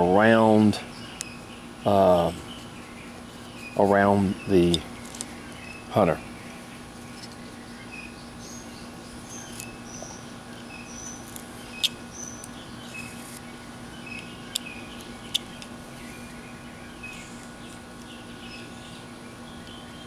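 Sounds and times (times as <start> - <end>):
steady low hum: 0.0 - 20.0
high bird chirps: 0.9 - 20.0.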